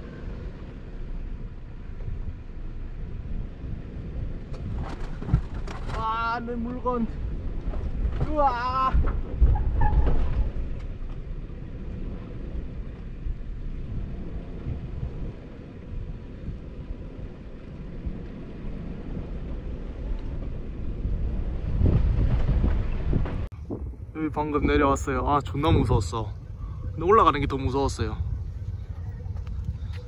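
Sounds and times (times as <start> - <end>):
off-road vehicle rumble: 0.0 - 30.0
wind buffeting microphone: 0.0 - 30.0.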